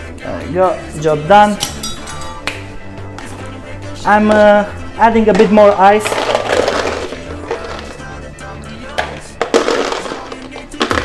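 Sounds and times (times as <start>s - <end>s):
background music: 0.0s - 11.0s
ice cubes clinking: 6.0s - 8.0s, 9.4s - 11.0s.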